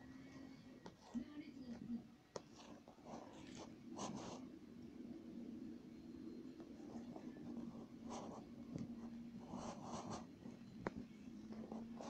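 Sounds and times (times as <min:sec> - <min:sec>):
low steady hum: 0:00.0 - 0:12.0
scratching on a touchscreen: 0:00.1 - 0:12.0.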